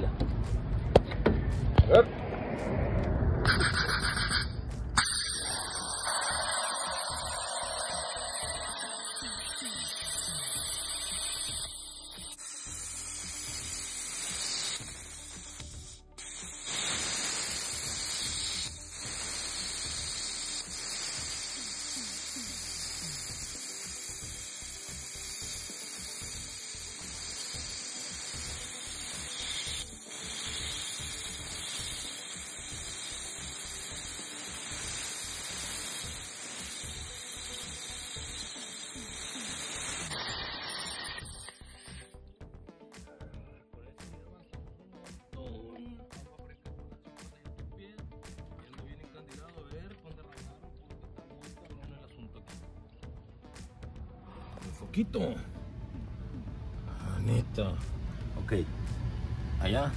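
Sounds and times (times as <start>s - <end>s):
background music: 0.0s - 59.9s
cutting torch hissing: 3.4s - 42.2s, 56.8s - 59.9s.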